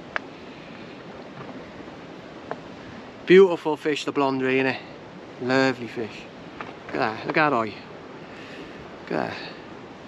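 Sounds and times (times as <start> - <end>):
sea water washing: 0.0 - 10.0
wind: 0.0 - 10.0.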